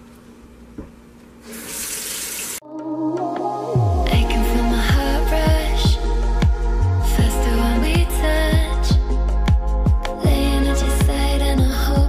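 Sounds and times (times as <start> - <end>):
faucet running into steel sink: 1.5 - 2.6
background music: 2.6 - 12.0.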